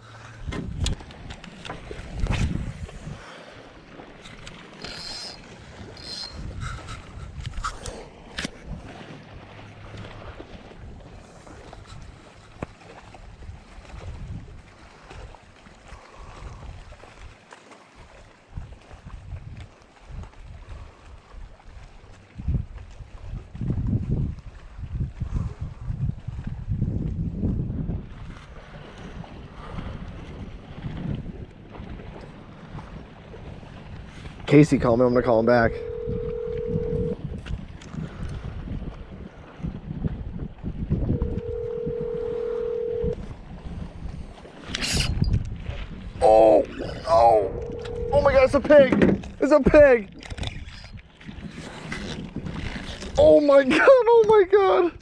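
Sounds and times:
choppy water: 0.0s - 55.0s
wind buffeting microphone: 0.0s - 55.0s.

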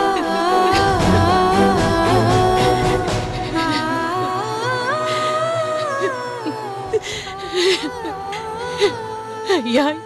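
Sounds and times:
person humming slow melody: 0.0s - 9.7s.

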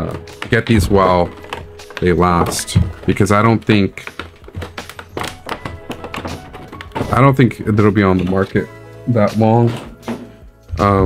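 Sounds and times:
plastic tray knocks and taps: 0.0s - 8.4s.

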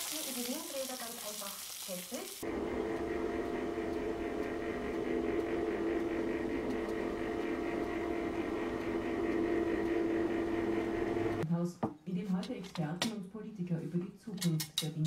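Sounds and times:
roller shutter motor hum: 2.4s - 11.4s.

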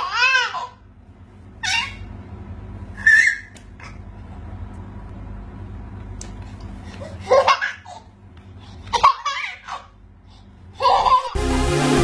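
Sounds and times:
baby laughing: 7.0s - 8.1s, 8.9s - 10.0s, 10.8s - 11.4s.

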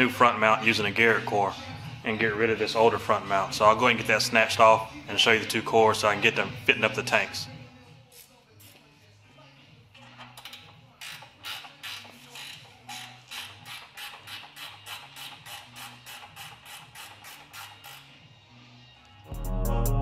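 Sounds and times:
ratchet wrench clicking: 10.1s - 18.1s.

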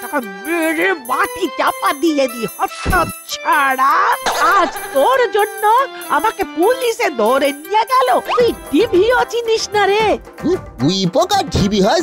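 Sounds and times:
background music with jingling: 0.0s - 12.0s
cartoon woman speaking: 3.4s - 10.1s.

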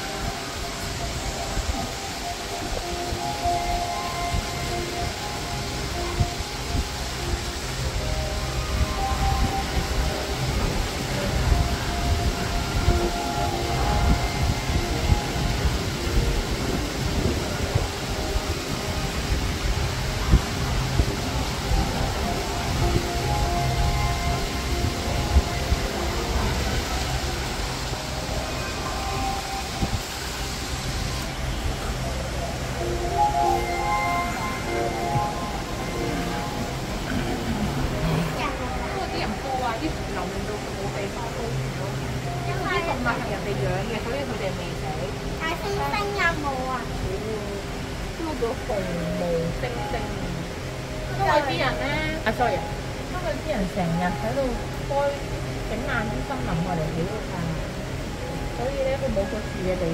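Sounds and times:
low rumbling room ambience: 0.0s - 45.6s
faint scattered tones: 0.0s - 59.9s.

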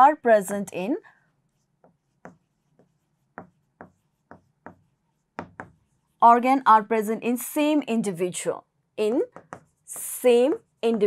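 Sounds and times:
chalk writing on blackboard: 1.3s - 6.2s, 9.1s - 11.0s.

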